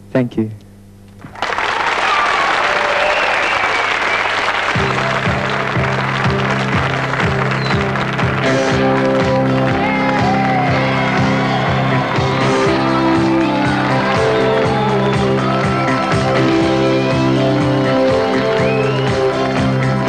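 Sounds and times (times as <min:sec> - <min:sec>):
studio audience applauding: 0:01.2 - 0:20.0
live band playing a beat: 0:04.6 - 0:20.0.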